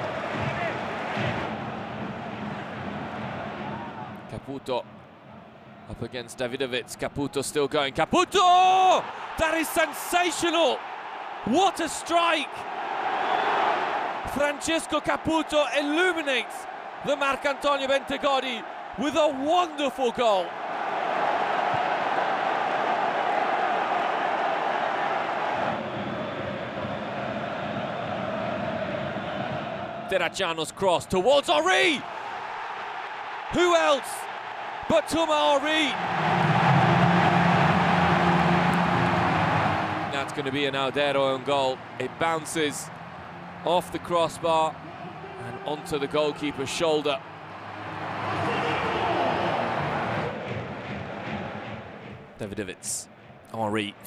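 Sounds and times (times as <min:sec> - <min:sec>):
stadium crowd din: 0:00.0 - 0:06.0, 0:07.2 - 0:54.0.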